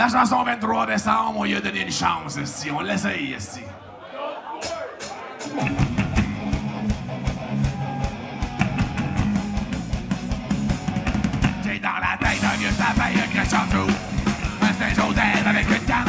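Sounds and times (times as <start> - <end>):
heavy metal band playing live: 5.0 - 16.0
man singing: 11.6 - 16.0.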